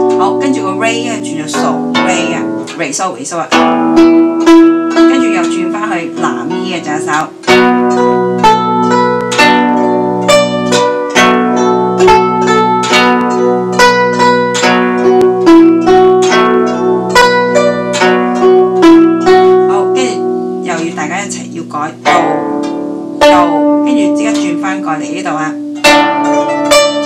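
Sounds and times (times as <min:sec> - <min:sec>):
guzheng plucked melody: 0:00.0 - 0:27.0.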